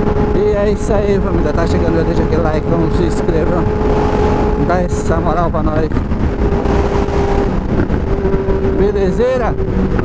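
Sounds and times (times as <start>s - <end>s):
motorcycle engine cruising: 0.0s - 10.0s
wind buffeting on microphone: 0.0s - 10.0s.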